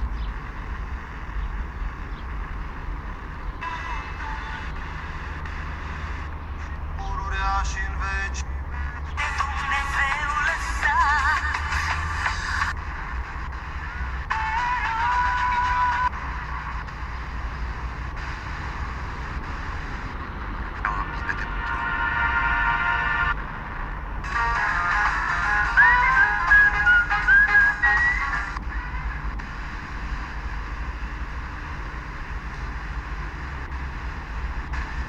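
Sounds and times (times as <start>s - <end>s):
radio static hiss: 0.0s - 22.1s, 24.3s - 35.0s
faint radio broadcast: 3.6s - 23.3s.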